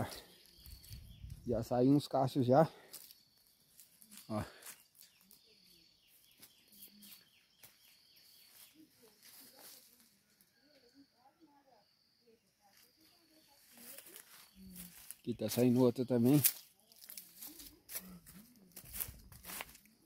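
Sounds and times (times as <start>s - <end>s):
birds chirping: 0.0s - 11.0s, 12.7s - 19.4s.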